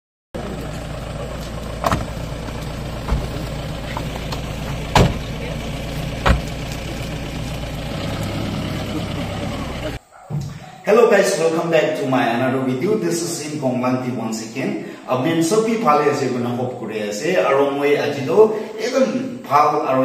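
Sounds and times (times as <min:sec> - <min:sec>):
vehicle engine idling: 0:00.4 - 0:10.1.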